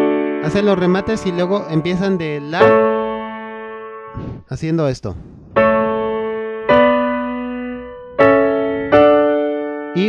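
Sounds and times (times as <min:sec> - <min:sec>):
electronic keyboard piano chords: 0:00.0 - 0:04.2, 0:05.6 - 0:10.0.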